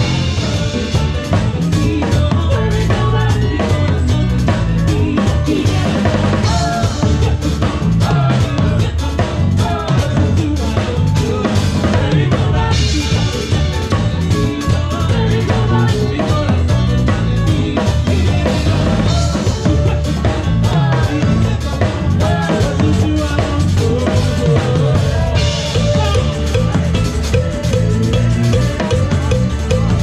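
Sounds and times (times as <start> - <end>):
bass drum beat: 0.0 - 30.0
keyboard: 0.0 - 30.0
live band playing: 0.0 - 30.0.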